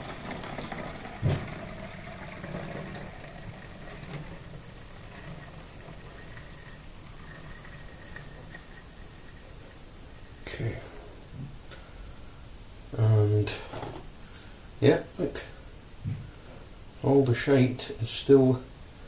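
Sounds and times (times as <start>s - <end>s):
water pouring through a funnel: 0.0s - 10.6s
dull knock: 1.2s - 1.5s.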